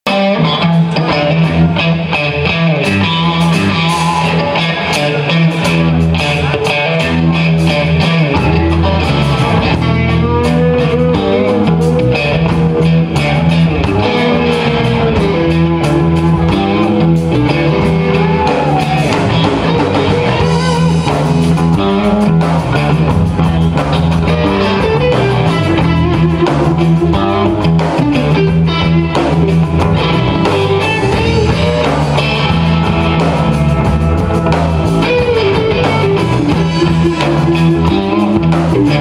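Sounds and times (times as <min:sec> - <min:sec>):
blues-rock band playing: 0:00.1 - 0:39.0.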